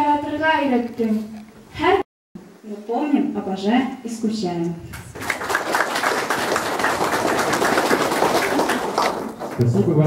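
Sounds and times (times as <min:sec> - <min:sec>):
audience clapping: 0:05.0 - 0:10.0.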